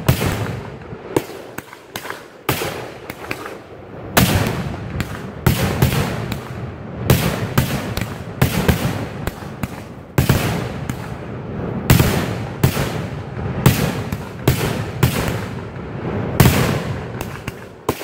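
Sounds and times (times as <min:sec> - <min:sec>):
hiss of climbing firework shots: 0:00.0 - 0:18.0.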